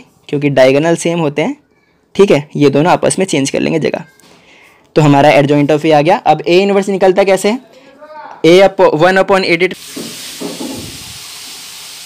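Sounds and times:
background hiss: 9.6 - 12.0.

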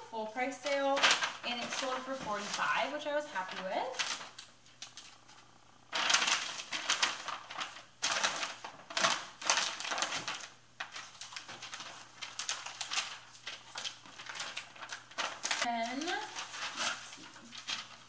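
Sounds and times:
mailer rustling and crinkling: 0.2 - 18.0.

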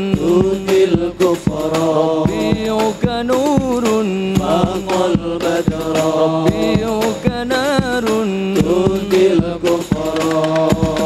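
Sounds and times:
frame drums striking: 0.0 - 11.0
men singing through microphones: 0.0 - 11.0.

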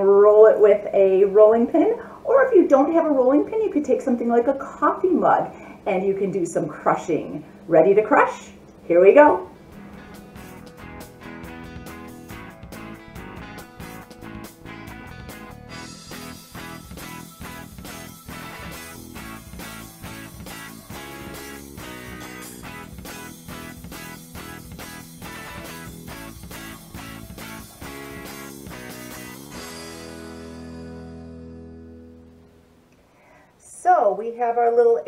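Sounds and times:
instrumental music steady rhythm: 9.6 - 33.1.

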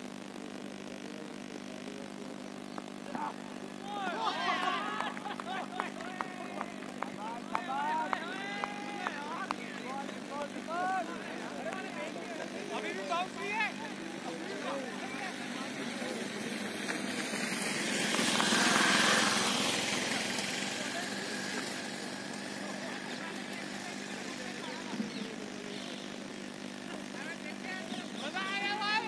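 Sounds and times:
steady low hum: 0.0 - 29.0
players calling and shouting: 2.4 - 29.0.

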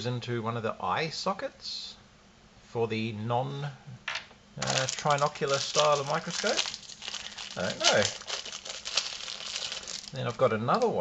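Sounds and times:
plastic wrapping crinkling: 4.6 - 11.0.

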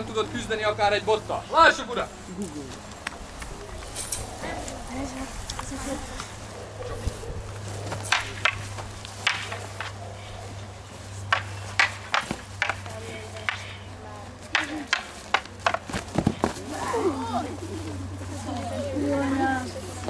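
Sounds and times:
voices: 0.0 - 20.0
wooden staffs clacking: 7.8 - 10.0, 11.2 - 16.6.

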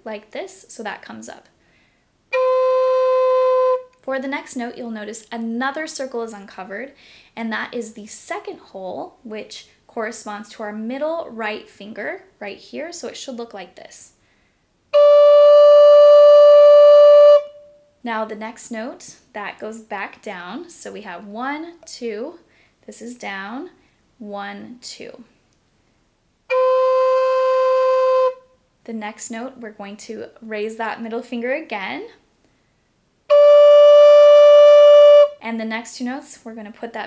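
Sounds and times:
flute playing held note: 2.3 - 3.9, 15.0 - 17.8, 26.5 - 28.4, 33.3 - 35.4.

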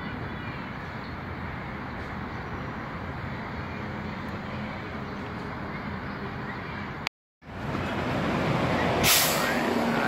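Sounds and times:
road traffic: 0.0 - 10.0
air brake hiss: 9.0 - 9.6.

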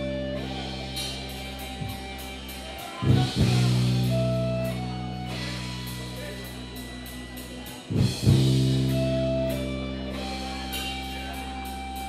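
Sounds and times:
distorted guitar and bass chords: 0.0 - 12.0.

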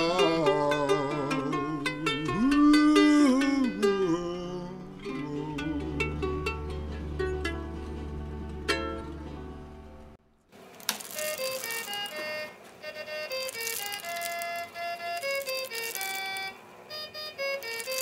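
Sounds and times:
toy accordion tune: 10.9 - 18.0.

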